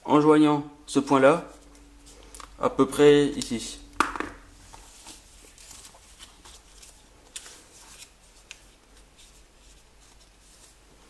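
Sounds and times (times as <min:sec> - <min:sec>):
paper rustling and crinkling: 0:04.6 - 0:11.0.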